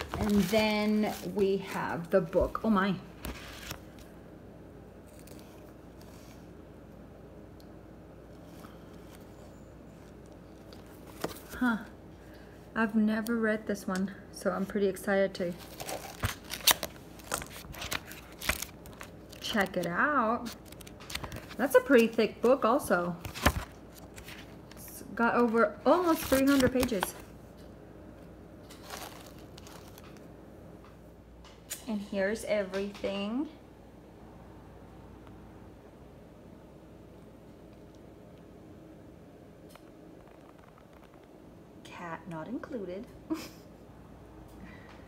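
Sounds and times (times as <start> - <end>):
book pages rustling: 0.0 - 2.1, 3.2 - 4.1, 8.3 - 11.7, 15.5 - 27.3, 28.7 - 30.2
room hum: 0.0 - 45.0.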